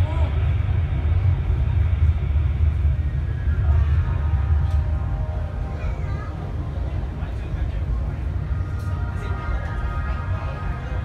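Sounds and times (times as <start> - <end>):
faint voices: 0.0 - 11.0
train rumbling in tunnel: 0.0 - 11.0.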